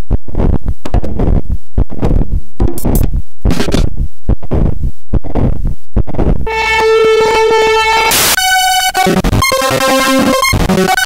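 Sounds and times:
noise burst: 0:00.0 - 0:11.0
stuttering electronic tones: 0:06.5 - 0:11.0.

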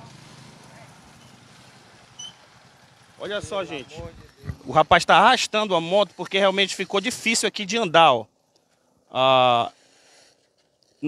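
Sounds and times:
vehicle engine idling: 0:00.0 - 0:07.0.

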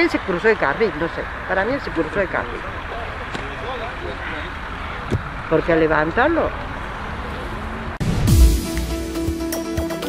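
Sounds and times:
outdoor rumble and hiss: 0:00.0 - 0:08.0.

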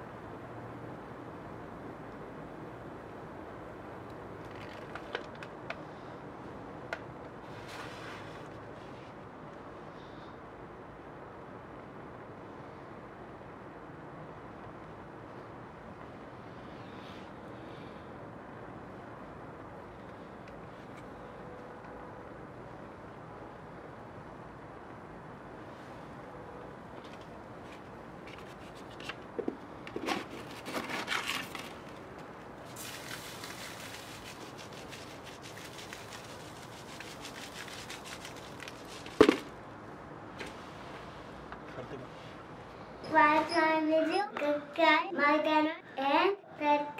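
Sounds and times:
fire crackling and hissing: 0:31.4 - 0:39.3.

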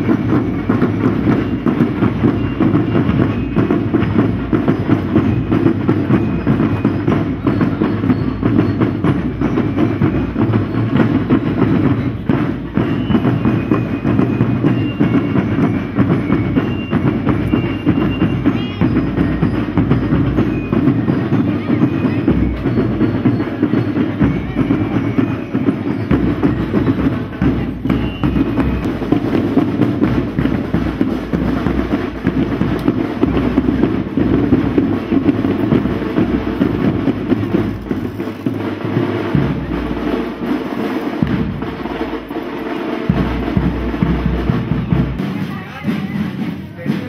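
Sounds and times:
drums beating steady rhythm: 0:00.0 - 0:47.0
marching band playing: 0:00.0 - 0:47.0.

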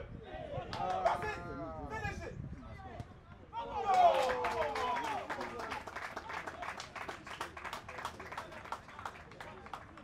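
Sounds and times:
scattered clapping: 0:03.9 - 0:10.0.

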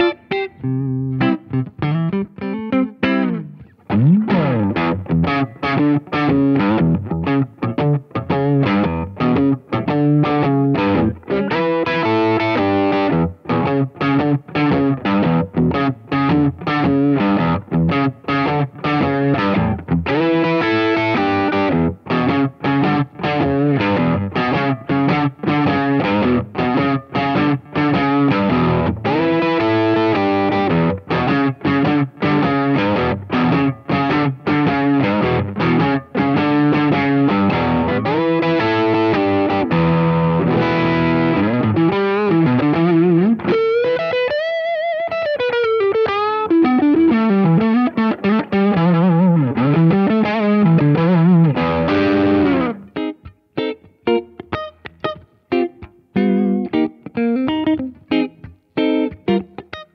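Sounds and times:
electric guitar through amp: 0:00.0 - 0:59.9.

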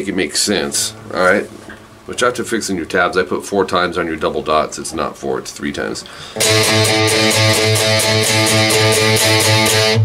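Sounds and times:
electric guitar octave riff: 0:00.7 - 0:02.1, 0:06.3 - 0:10.0.

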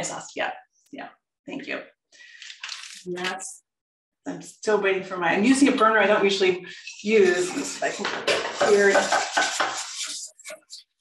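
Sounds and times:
metal whisk scraping a pan: 0:06.7 - 0:10.8.

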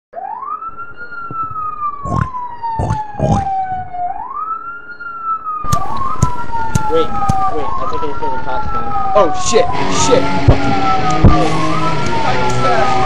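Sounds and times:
wailing siren: 0:00.1 - 0:13.0.

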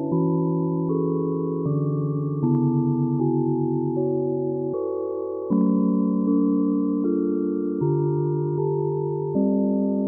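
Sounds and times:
ambient keyboard chords: 0:00.0 - 0:10.0.

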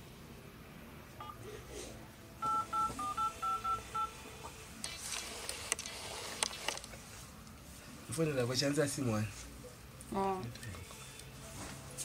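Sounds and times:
phone keypad dialing tones: 0:02.4 - 0:04.1.

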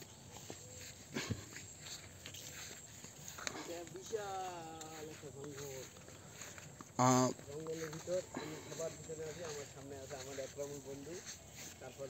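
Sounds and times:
footsteps on dry leaves: 0:00.0 - 0:12.0.

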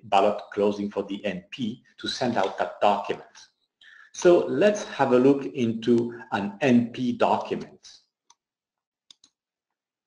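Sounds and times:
computer mouse clicks: 0:09.1 - 0:09.4.

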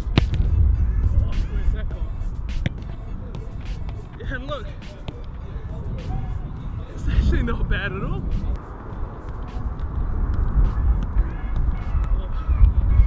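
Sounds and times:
boot kicking football thuds: 0:00.0 - 0:06.9
low wind rumble: 0:00.0 - 0:13.0.

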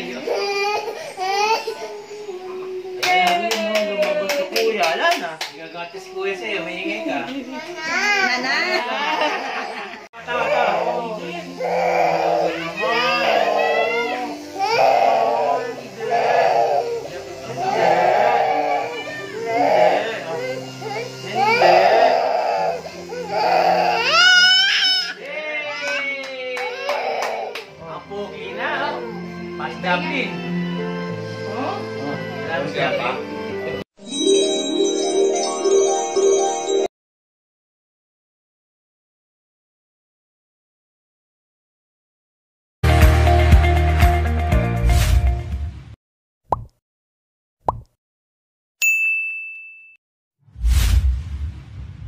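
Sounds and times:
toddler crying: 0:00.0 - 0:03.1, 0:07.6 - 0:27.6
background music: 0:27.5 - 0:36.9, 0:42.8 - 0:45.8
bell ding: 0:48.8 - 0:50.0.

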